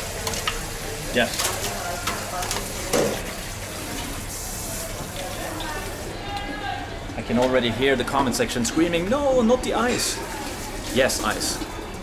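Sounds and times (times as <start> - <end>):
steady hiss of food stall: 0.0 - 12.0.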